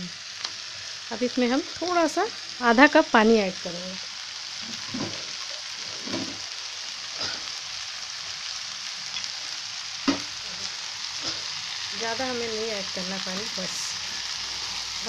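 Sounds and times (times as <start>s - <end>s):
vegetables sizzling in a frying pan: 0.0s - 15.0s
soft knocks against a pan: 10.1s - 10.3s.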